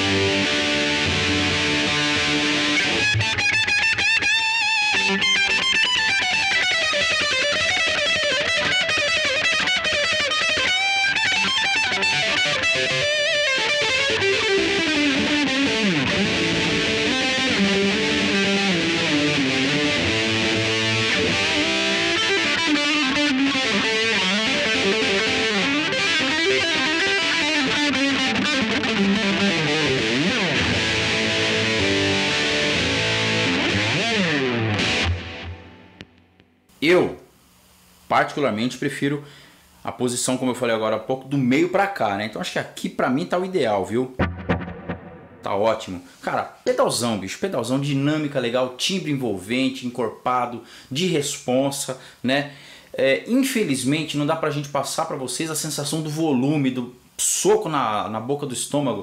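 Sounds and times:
distorted electric guitar: 0:00.0 - 0:36.8, 0:44.1 - 0:46.3.

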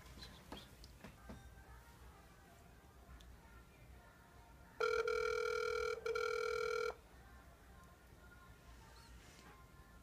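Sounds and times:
phone ringback tone: 0:04.8 - 0:07.0.

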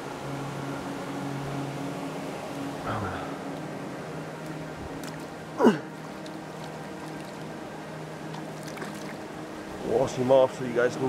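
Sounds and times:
low wash of moving water: 0:00.0 - 0:11.0
river water sloshing and splashing: 0:00.0 - 0:11.0.

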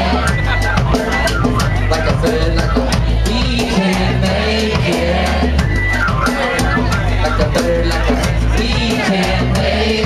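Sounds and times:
drum kit: 0:00.0 - 0:10.0.

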